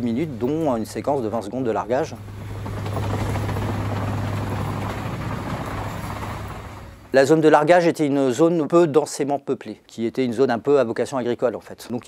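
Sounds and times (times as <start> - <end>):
propeller engines droning: 0.0 - 7.2
rush of air: 2.2 - 7.2.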